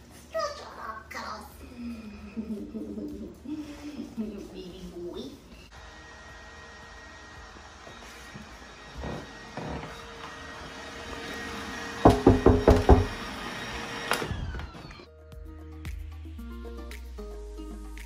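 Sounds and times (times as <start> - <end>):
room hum: 0.0 - 15.1
sharp knocks on wood: 12.0 - 13.2.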